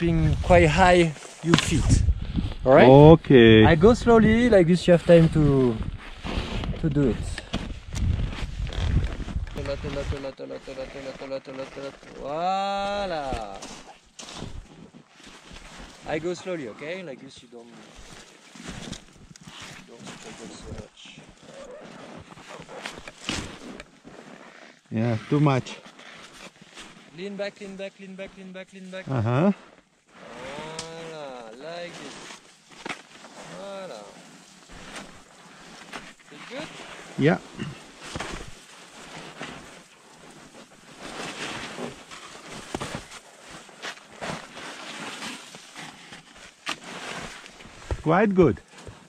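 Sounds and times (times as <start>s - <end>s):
scraping of snow and climbing gear: 0.0s - 49.0s
wind on microphone: 1.6s - 4.6s, 5.3s - 10.2s.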